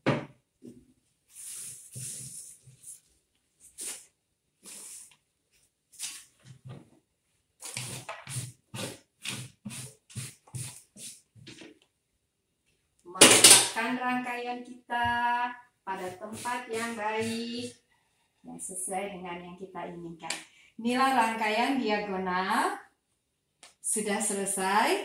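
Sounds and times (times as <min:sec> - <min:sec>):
brushing strokes on table: 0:01.3 - 0:06.5, 0:07.6 - 0:11.3, 0:15.9 - 0:17.6.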